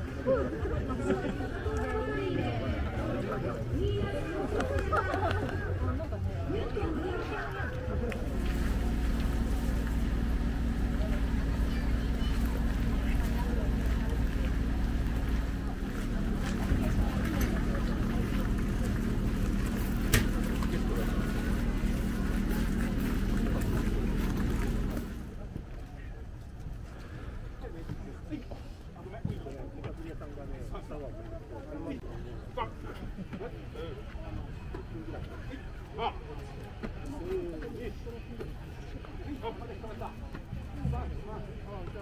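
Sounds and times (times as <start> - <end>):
low engine hum: 0.0 - 27.3
people talking: 0.0 - 42.0.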